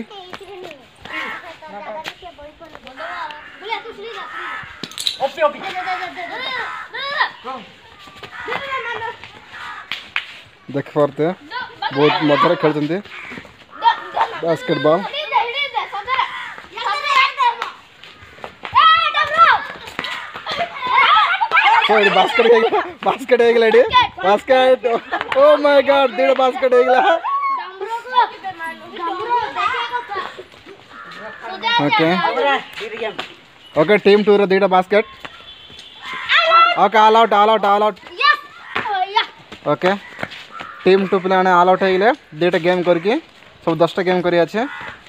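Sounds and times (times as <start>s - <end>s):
children shouting and calling out: 0.0s - 10.8s, 11.4s - 43.5s.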